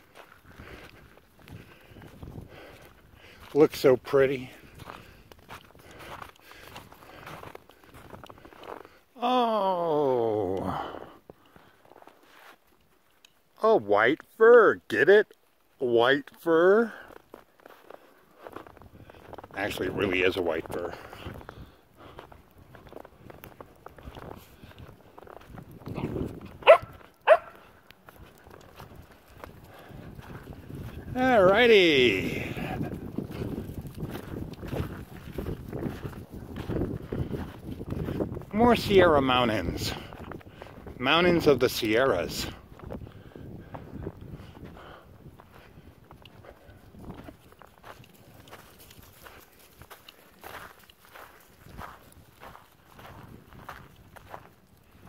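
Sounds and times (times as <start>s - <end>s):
footsteps crunching in snow: 0.0s - 9.1s, 11.3s - 13.2s, 16.8s - 55.0s
dog barking: 26.6s - 27.7s.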